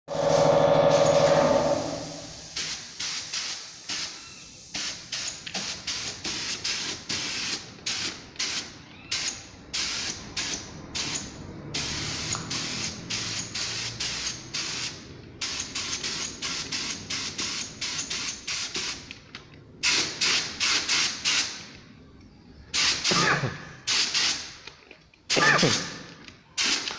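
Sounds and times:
paint spray gun hissing: 0:00.1 - 0:11.2, 0:11.8 - 0:19.0.

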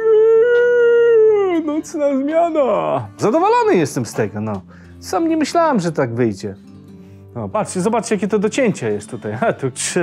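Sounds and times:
man mock howling: 0:00.0 - 0:03.0.

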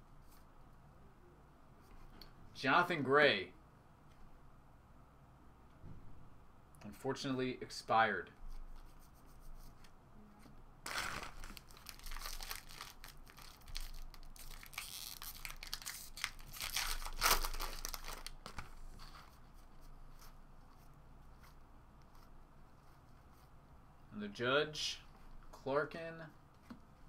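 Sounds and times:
foil wrapper tearing and crinkling: 0:10.9 - 0:18.6.

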